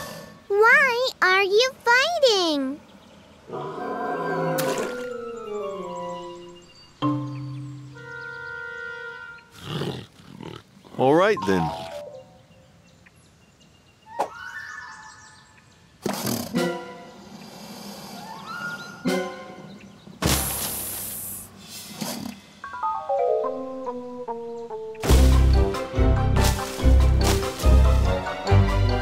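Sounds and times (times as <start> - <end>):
cartoon snake hissing: 20.5 - 22.4.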